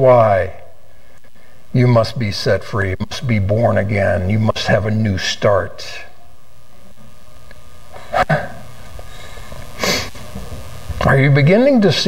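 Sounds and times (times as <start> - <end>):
room hum: 0.0 - 12.0
man snorting: 7.9 - 10.2.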